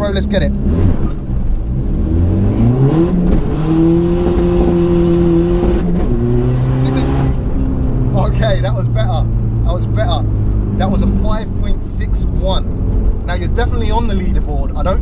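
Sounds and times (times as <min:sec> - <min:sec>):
diesel engine revving hard: 0:00.0 - 0:13.6.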